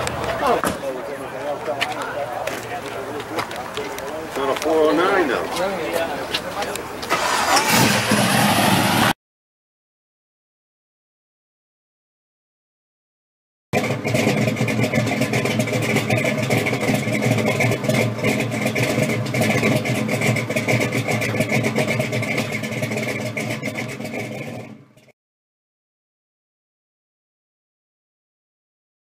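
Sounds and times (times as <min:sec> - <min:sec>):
car engine running: 0:02.4 - 0:09.1, 0:13.8 - 0:25.1.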